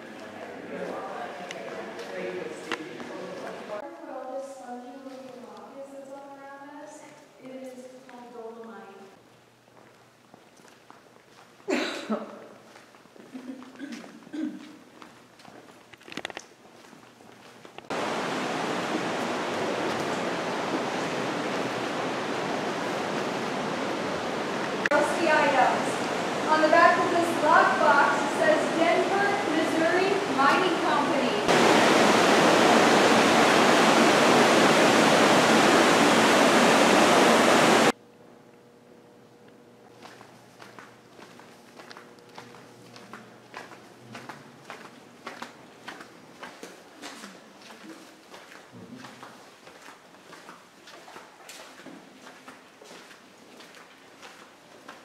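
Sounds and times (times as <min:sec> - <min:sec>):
footsteps on cave walkway: 0:00.0 - 0:03.6, 0:08.1 - 0:18.2, 0:18.8 - 0:23.4, 0:39.8 - 0:55.0
steady rushing noise: 0:17.9 - 0:38.0.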